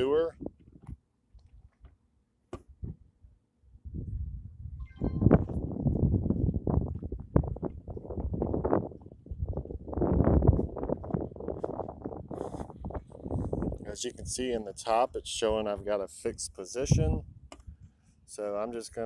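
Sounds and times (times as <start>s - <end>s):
wind on microphone: 2.7s - 18.2s
phone microphone handling rumble: 5.0s - 14.5s.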